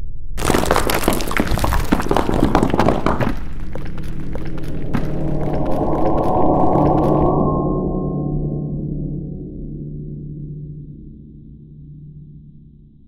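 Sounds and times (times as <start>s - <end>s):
rock cracking and crumbling: 0.4s - 7.4s.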